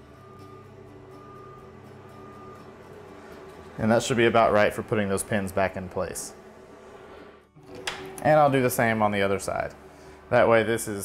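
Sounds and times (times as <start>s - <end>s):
faint motor whine: 0.0s - 11.0s.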